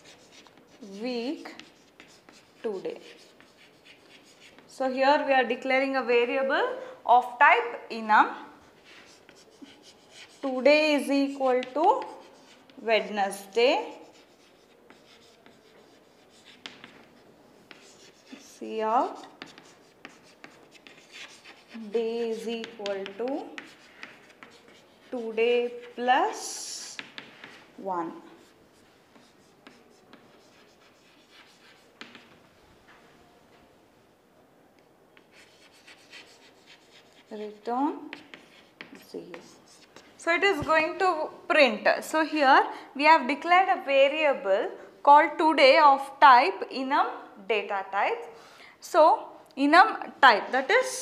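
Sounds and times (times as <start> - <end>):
chalk scratching on chalkboard: 0.0 - 4.8, 8.5 - 32.4, 35.2 - 40.7
woman speaking: 0.8 - 1.6, 4.8 - 8.5, 10.4 - 12.2, 12.8 - 14.0, 21.7 - 23.6, 25.1 - 27.0, 27.8 - 28.5, 37.3 - 38.1, 39.0 - 39.6, 40.2 - 51.0.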